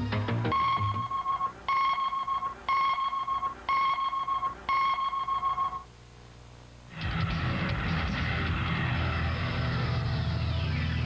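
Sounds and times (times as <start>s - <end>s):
electronic countdown beeps: 0.1s - 5.9s.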